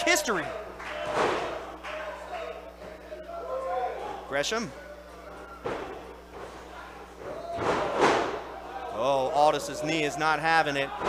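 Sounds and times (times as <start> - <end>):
bodies slamming on wrestling ring: 7.4 - 8.4.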